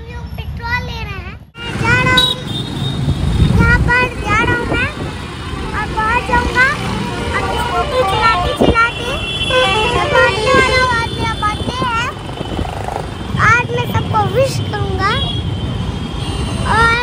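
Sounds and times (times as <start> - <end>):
vehicle engines rumbling: 0.0 - 17.0
car horns honking: 1.6 - 3.6, 6.4 - 17.0
people's voices: 3.4 - 15.4.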